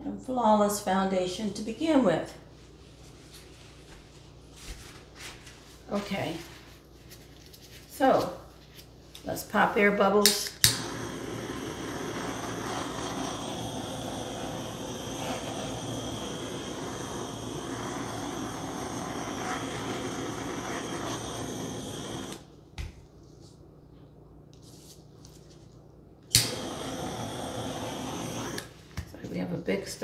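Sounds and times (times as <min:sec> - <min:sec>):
torch igniter click: 0:10.2 - 0:22.5, 0:26.3 - 0:28.7
butane torch hissing: 0:10.2 - 0:22.6, 0:26.3 - 0:29.0.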